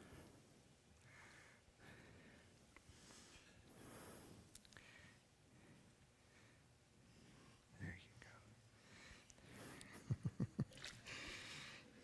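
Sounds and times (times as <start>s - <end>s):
faint whispering: 7.1s - 9.3s.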